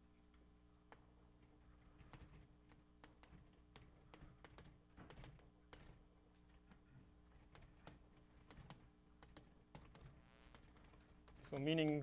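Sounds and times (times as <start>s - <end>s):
chalk scratching: 0.9s - 12.0s
chalk tapping on blackboard: 0.9s - 12.0s.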